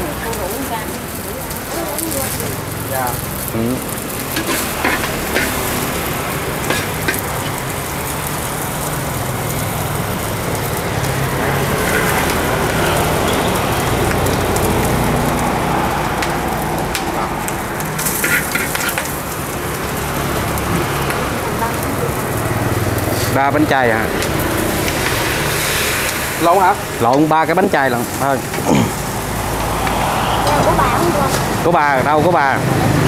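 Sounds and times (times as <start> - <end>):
food sizzling in hot oil: 0.0 - 33.0
metal utensils clinking: 4.2 - 6.0, 6.6 - 7.6, 11.6 - 12.5, 18.0 - 19.2.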